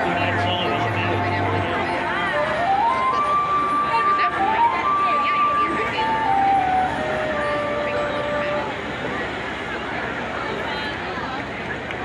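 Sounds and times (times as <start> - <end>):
marching band sustained notes: 0.0 - 11.6
crowd chatter: 0.0 - 12.0.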